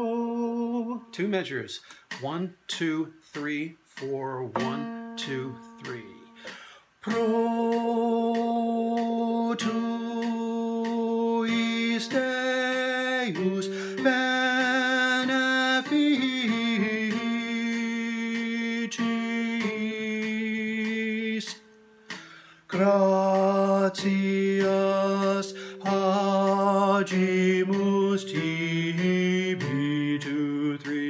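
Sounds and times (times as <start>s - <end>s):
tenor singing held notes: 0.6s - 9.8s.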